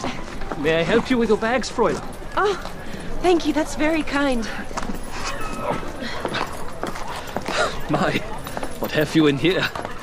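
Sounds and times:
horse hooves clip-clopping: 0:00.0 - 0:10.0
voices in background: 0:00.0 - 0:10.0.

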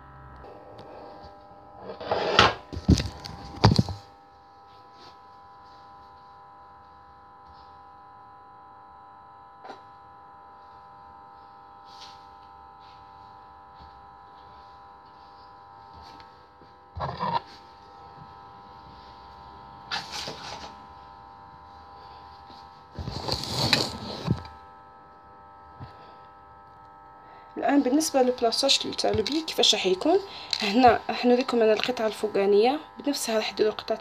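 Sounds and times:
steady electrical hum: 0:00.0 - 0:34.0.

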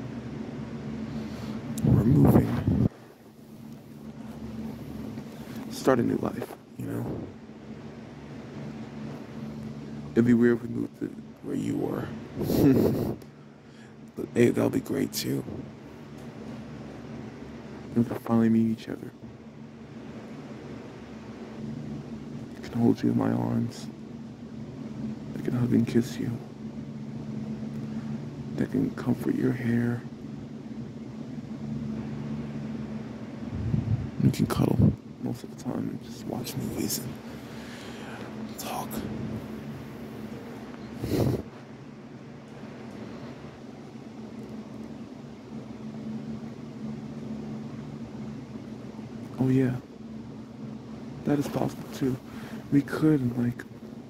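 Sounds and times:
faint room hiss: 0:00.0 - 0:54.0
low background hum: 0:00.0 - 0:54.0
faint hiss: 0:50.6 - 0:53.9.

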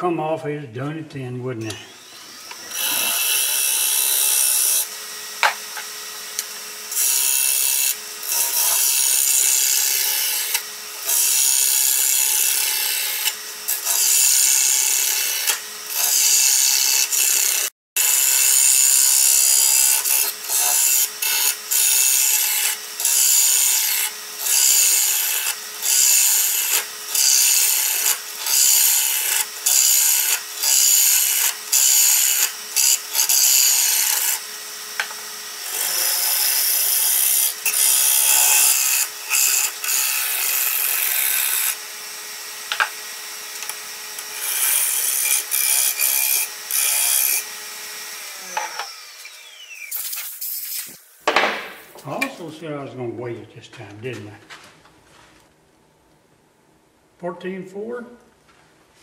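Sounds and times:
wood lathe tool scraping shavings: 0:01.7 - 0:51.0.

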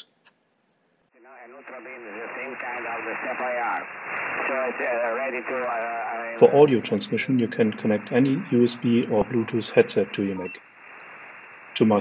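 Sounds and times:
voice over shortwave radio: 0:01.2 - 0:10.6, 0:11.8 - 0:12.0.

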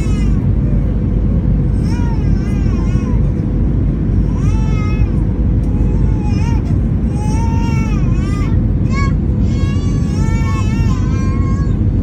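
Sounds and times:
aircraft cabin roar: 0:00.0 - 0:12.0
steady hum: 0:00.0 - 0:12.0.

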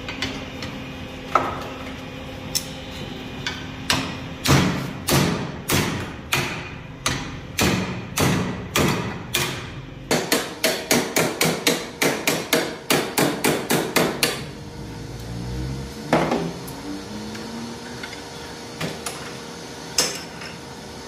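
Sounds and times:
hammer striking hot steel: 0:03.5 - 0:14.5.

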